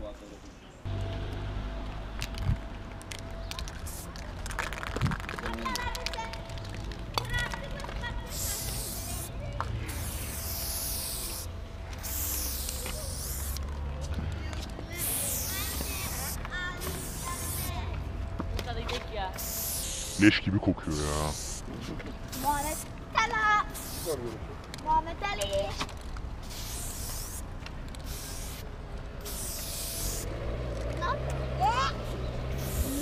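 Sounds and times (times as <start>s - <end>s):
spray paint can hissing: 3.4s - 13.8s, 14.9s - 17.8s, 19.4s - 20.2s, 20.9s - 21.7s, 22.3s - 22.9s, 23.7s - 24.8s, 25.5s - 30.4s, 32.5s - 33.0s.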